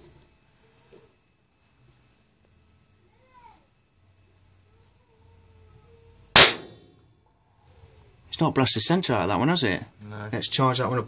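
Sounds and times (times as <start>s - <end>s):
loud sharp bang: 6.4s - 6.9s.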